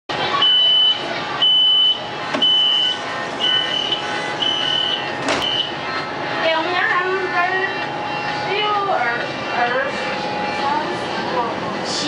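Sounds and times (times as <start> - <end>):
train door warning beeps: 0.4 - 5.8
train doors shutting: 2.2 - 5.8.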